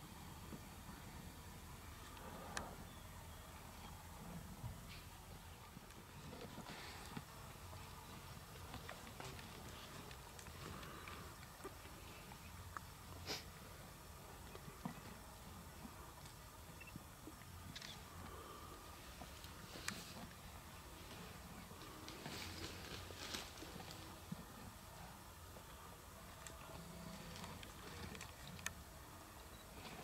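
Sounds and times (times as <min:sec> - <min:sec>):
faint low rumble: 0:00.0 - 0:30.0.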